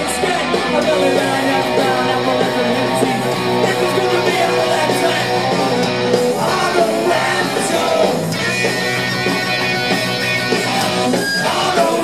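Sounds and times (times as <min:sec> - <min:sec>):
distorted electric guitar riff: 0:00.0 - 0:12.0
drums: 0:00.0 - 0:12.0.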